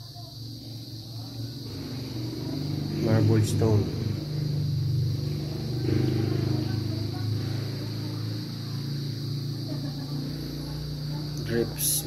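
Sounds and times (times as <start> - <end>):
high-pitched whine: 0.0 - 12.0
low background hum: 0.0 - 12.0.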